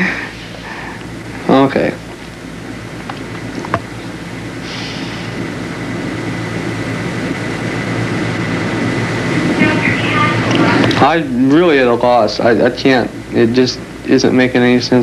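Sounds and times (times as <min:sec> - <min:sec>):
low electrical hum and hiss: 0:00.0 - 0:15.0.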